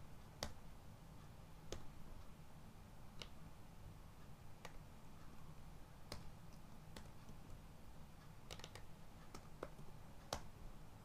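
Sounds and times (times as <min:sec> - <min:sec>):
computer keyboard keystrokes: 0:08.5 - 0:10.5.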